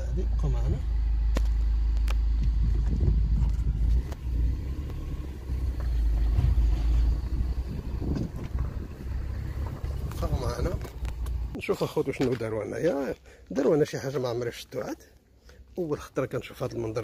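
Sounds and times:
car engine and road noise: 0.0 - 13.4.

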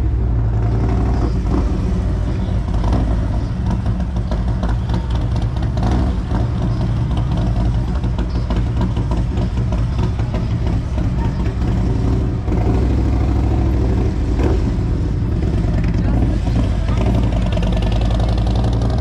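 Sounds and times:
motorcycle engine running: 0.0 - 19.0
passing cars: 0.0 - 19.0.

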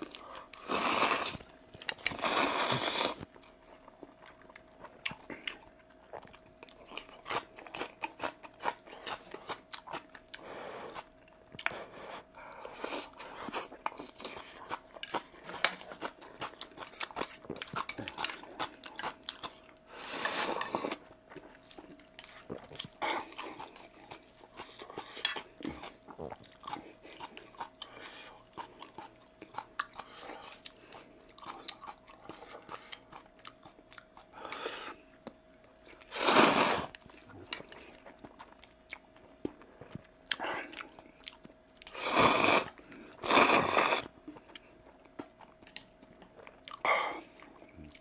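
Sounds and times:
wet chewing and lip smacks: 21.0 - 34.4, 36.9 - 42.0, 44.2 - 48.0
loud noodle slurp: 36.1 - 36.9, 42.0 - 44.1.

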